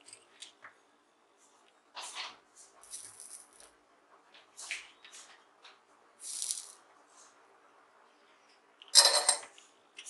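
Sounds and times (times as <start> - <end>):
metallic clatter on bench: 8.9 - 9.5.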